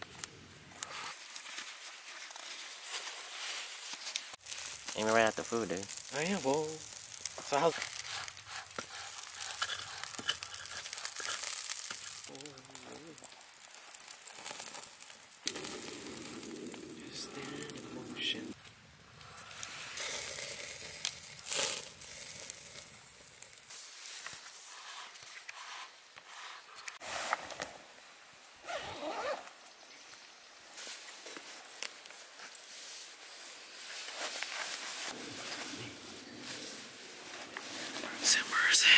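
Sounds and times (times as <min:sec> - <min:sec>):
campfire crackling and popping: 0:00.0 - 0:27.9
sausages sizzling on grill: 0:04.0 - 0:18.6, 0:19.3 - 0:27.0, 0:38.2 - 0:38.9
indistinct voices: 0:15.8 - 0:18.6.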